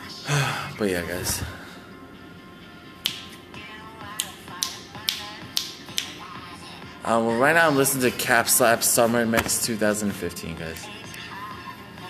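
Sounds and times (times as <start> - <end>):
dance music: 0.0 - 12.0
finger snaps: 3.0 - 3.4, 4.1 - 6.3.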